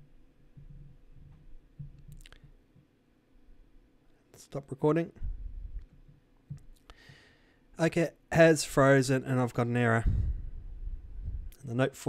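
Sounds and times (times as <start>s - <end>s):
low rumble: 5.2s - 5.9s, 10.0s - 11.6s.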